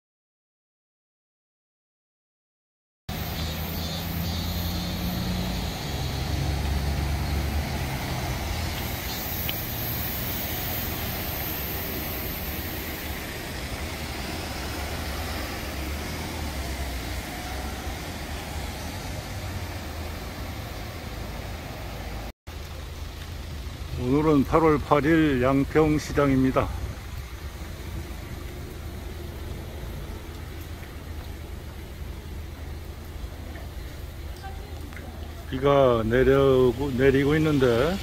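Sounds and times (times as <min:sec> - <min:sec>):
car engines idling and passing: 0:03.1 - 0:38.0
tyres hissing on wet road: 0:03.1 - 0:38.0.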